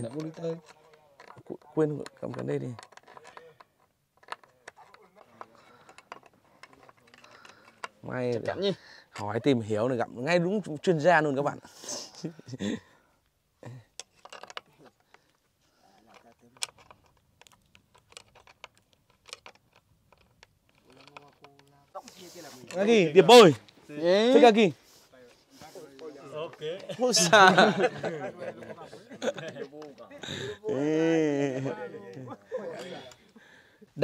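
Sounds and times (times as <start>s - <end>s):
pulley fittings clicking and tapping: 0.0s - 8.5s, 14.0s - 15.4s, 16.0s - 23.0s.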